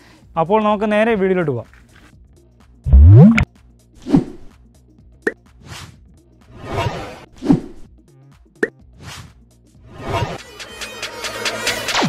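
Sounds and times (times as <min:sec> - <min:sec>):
intro music: 0:02.9 - 0:03.4
swooshes: 0:02.9 - 0:03.4.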